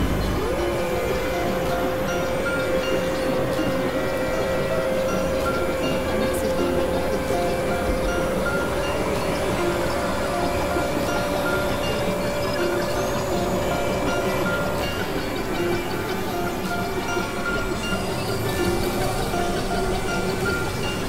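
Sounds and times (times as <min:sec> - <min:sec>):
electronic drone and noise music: 0:00.0 - 0:21.0.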